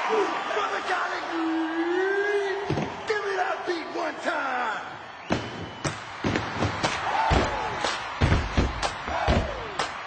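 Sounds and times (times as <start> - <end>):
crowd noise: 0.0 - 10.0
stomps claps and body slaps: 5.3 - 10.0.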